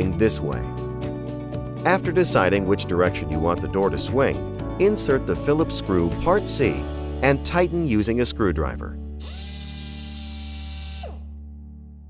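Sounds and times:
soft background music: 0:00.0 - 0:12.0
cordless drill driving a screw: 0:09.2 - 0:11.3.

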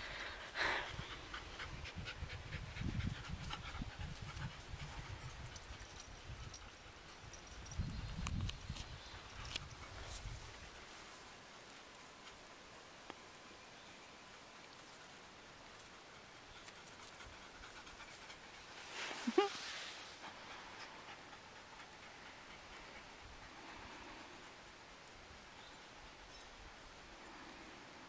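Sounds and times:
faint background hiss: 0:00.0 - 0:28.0.

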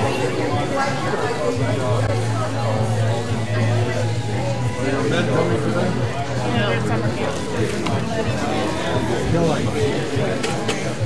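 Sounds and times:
people chatting: 0:00.0 - 0:11.0
quiet music: 0:00.0 - 0:11.0.

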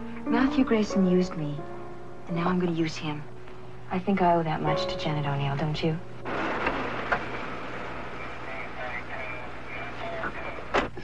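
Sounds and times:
outdoor noise: 0:06.2 - 0:11.0
car engine running: 0:06.3 - 0:10.7
faint muffled voices: 0:08.2 - 0:11.0.

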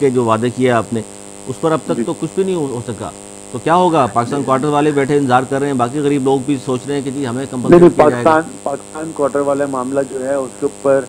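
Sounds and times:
man speaking: 0:00.0 - 0:11.0
steady electrical hum: 0:00.0 - 0:11.0.

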